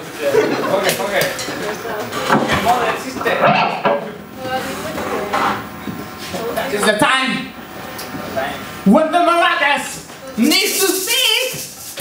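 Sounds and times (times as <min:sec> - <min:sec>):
indistinct talking: 0:00.0 - 0:12.0.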